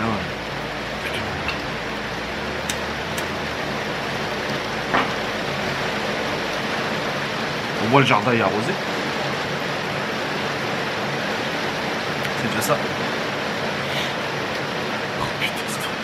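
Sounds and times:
steady rain falling: 0:00.0 - 0:16.0.

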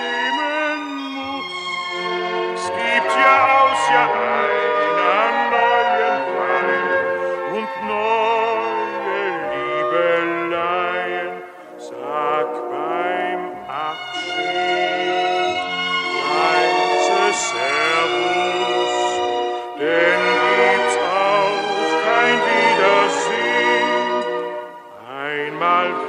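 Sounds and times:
orchestral music with vibrato: 0:00.0 - 0:26.0.

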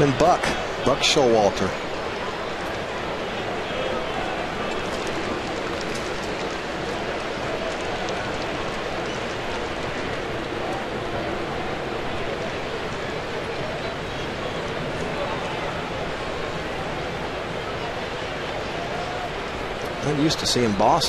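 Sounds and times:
crowd murmur: 0:00.0 - 0:21.0.

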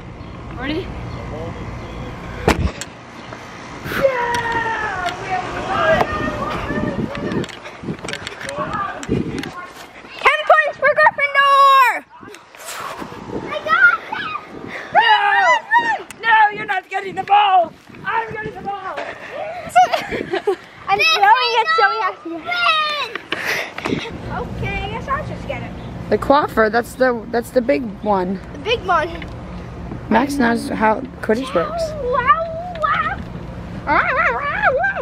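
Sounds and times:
wind rumble on microphone: 0:03.6 - 0:09.6, 0:12.2 - 0:20.5
girls calling out: 0:03.9 - 0:09.1, 0:10.0 - 0:12.5, 0:13.4 - 0:20.2, 0:20.8 - 0:25.4, 0:30.0 - 0:35.0.

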